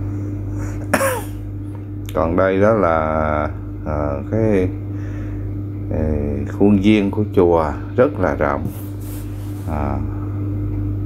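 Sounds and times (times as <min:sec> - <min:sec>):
steady low hum: 0:00.0 - 0:11.0
man coughing: 0:00.6 - 0:01.4.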